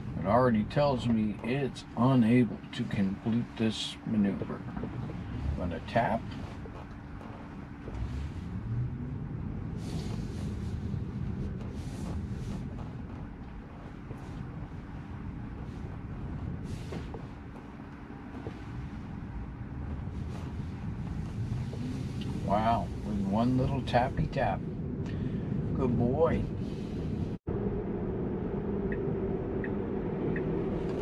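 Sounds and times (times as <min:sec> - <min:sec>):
road and tyre rumble: 0:00.0 - 0:31.0.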